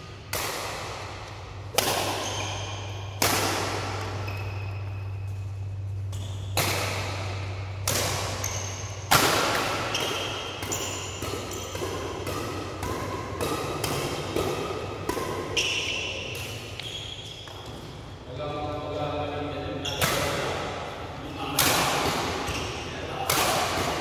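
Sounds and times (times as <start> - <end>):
rackets striking shuttlecock: 0.1 - 17.8, 21.5 - 24.0
shoes squeaking on court floor: 2.1 - 3.2, 4.0 - 6.6, 7.4 - 9.1, 9.8 - 11.8, 15.5 - 18.2.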